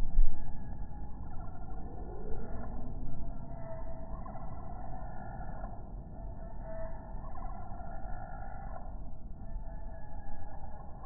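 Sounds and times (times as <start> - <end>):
low steady rumble: 0.0 - 5.7.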